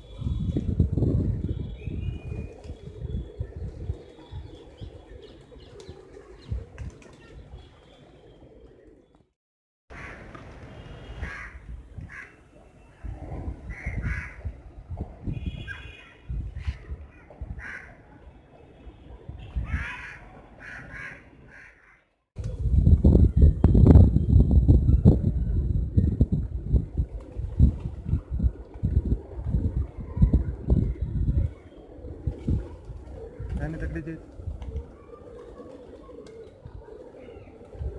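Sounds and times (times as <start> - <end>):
wind rumble on microphone: 0.0 - 5.2, 5.8 - 7.8, 10.5 - 12.2, 12.9 - 18.4, 19.0 - 20.1, 22.4 - 35.0, 36.6 - 37.9
birds' harsh calls: 9.9 - 12.6, 13.7 - 14.5, 15.4 - 18.0, 19.6 - 22.0
pigeons taking off: 31.5 - 37.9.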